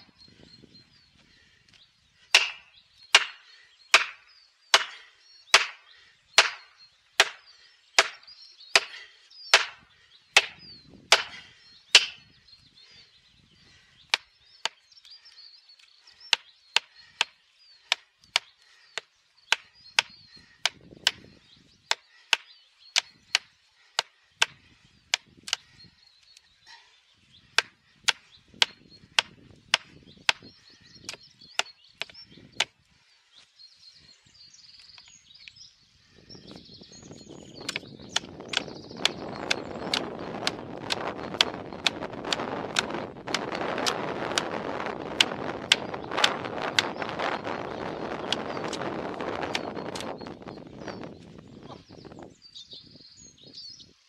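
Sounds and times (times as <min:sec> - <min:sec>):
hammer blows on wedges: 0:02.3 - 0:05.8, 0:08.8 - 0:12.2, 0:37.6 - 0:47.0.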